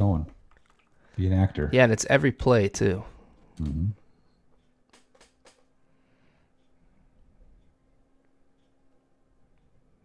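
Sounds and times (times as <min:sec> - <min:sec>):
faint steady hum: 0:00.0 - 0:10.0
computer mouse clicks: 0:04.9 - 0:05.7.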